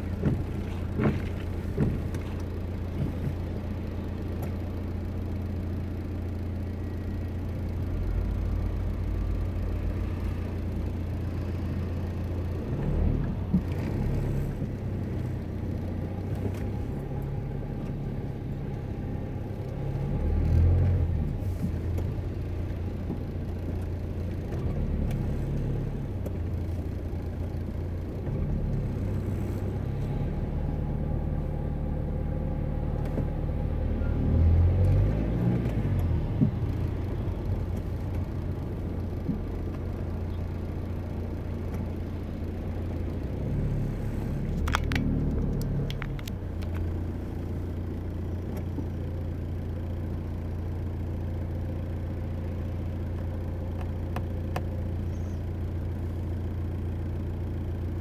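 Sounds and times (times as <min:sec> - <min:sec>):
car bumps: 0:00.0 - 0:03.8
car engine humming in traffic: 0:00.0 - 0:58.0.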